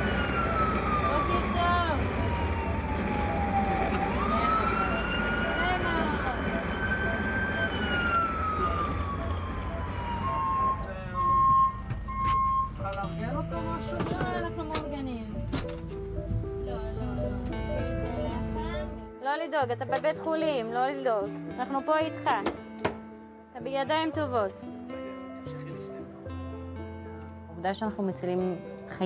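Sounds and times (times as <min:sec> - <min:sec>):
ambulance siren wailing: 0:00.0 - 0:14.8, 0:16.2 - 0:19.0
engine and road rumble: 0:00.0 - 0:19.2.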